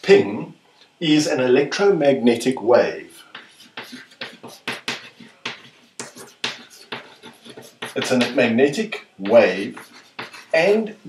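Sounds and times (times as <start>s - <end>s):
chalk tapping and scraping on chalkboard: 3.1s - 11.0s.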